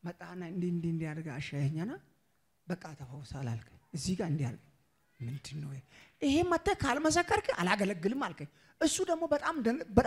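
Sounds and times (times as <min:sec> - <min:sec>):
man speaking into a microphone: 0:02.6 - 0:06.6.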